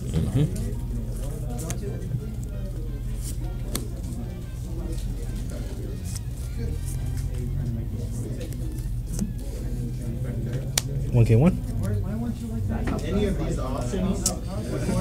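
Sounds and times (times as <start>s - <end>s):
murmur of voices: 0.0s - 15.0s
steady low hum: 0.0s - 15.0s.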